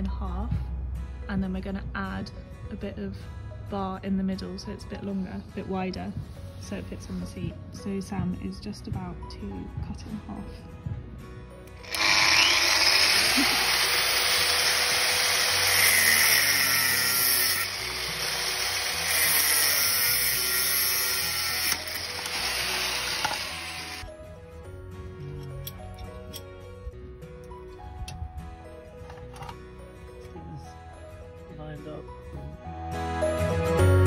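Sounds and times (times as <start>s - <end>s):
quiet background music: 0.0s - 11.9s, 14.6s - 34.0s
angle grinder cutting metal: 11.7s - 24.1s.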